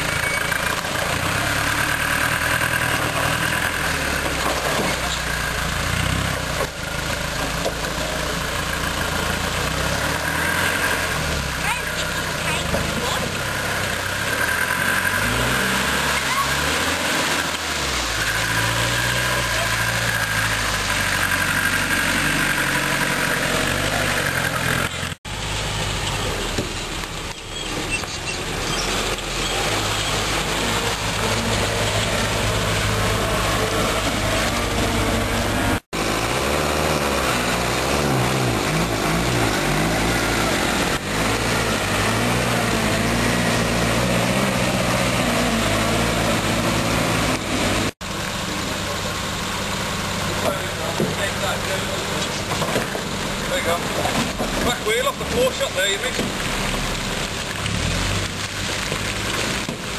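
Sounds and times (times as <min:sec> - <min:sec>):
off-road engines revving: 0:00.0 - 0:59.9.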